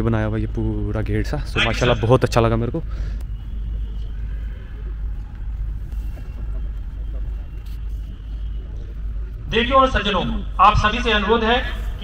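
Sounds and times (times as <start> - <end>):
distant voices: 0.0 - 12.0
low crowd rumble: 0.0 - 12.0.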